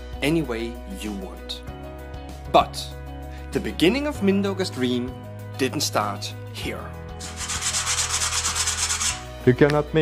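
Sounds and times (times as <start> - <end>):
hand sanding wood: 7.2 - 9.3.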